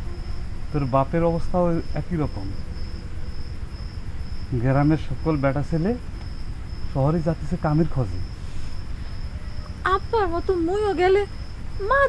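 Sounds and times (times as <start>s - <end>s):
crickets chirping: 0.0s - 12.0s
people speaking: 0.8s - 2.6s, 4.5s - 6.0s, 7.0s - 8.2s, 9.8s - 12.0s.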